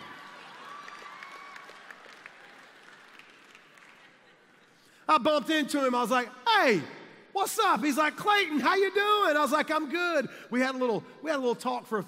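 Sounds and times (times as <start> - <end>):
audience applause: 0.0 - 4.6.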